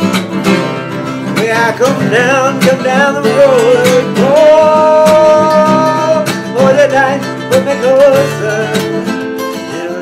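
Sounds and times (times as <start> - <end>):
acoustic guitars strumming: 0.0 - 10.0.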